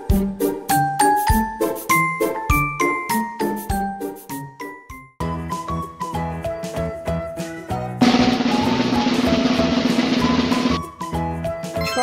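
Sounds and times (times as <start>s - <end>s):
light children's music: 0.0s - 12.0s
snare drum roll: 8.0s - 10.8s.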